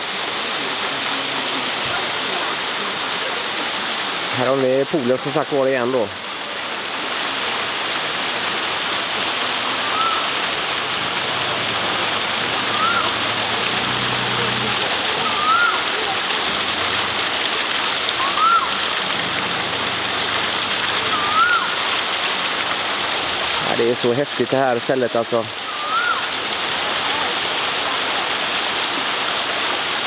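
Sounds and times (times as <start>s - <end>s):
waterfall rushing: 0.0s - 30.0s
rising-and-falling whistle: 9.9s - 10.3s, 12.7s - 13.1s, 15.3s - 15.8s, 18.3s - 18.7s, 21.1s - 21.8s, 25.7s - 26.2s.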